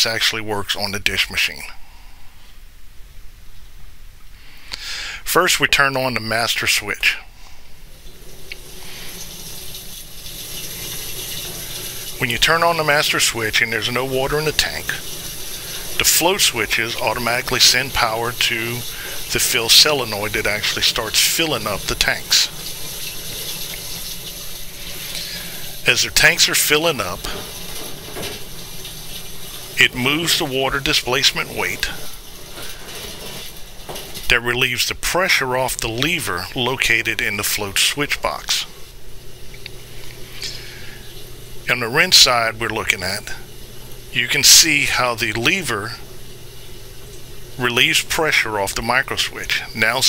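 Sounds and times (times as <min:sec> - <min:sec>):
water splashing into metal tank: 0:07.9 - 0:34.4.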